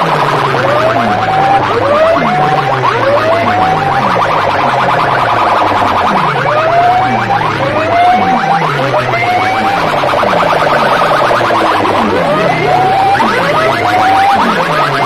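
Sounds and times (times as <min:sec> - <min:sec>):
electronic music over horn loudspeakers: 0:00.0 - 0:15.0.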